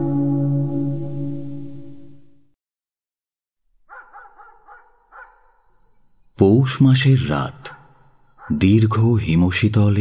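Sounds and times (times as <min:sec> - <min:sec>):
cricket trill: 0:03.6 - 0:10.0
dog barking faint yelps: 0:03.9 - 0:05.5.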